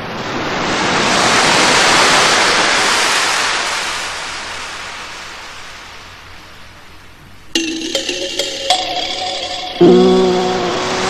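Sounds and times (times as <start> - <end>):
sea surf wave: 0.0 - 6.0.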